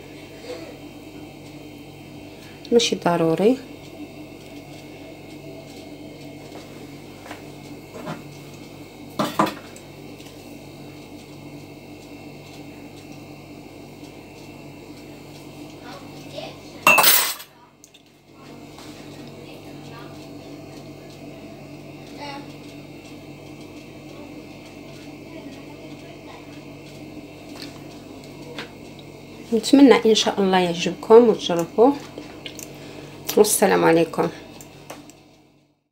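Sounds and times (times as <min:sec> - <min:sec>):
steady low hum: 0:00.0 - 0:35.8
dishes and utensils clinking: 0:16.9 - 0:17.5.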